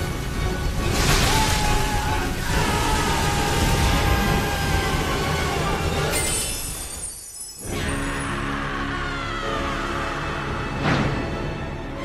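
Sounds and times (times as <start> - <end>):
dramatic orchestral score: 0.0 - 6.8, 7.6 - 12.0.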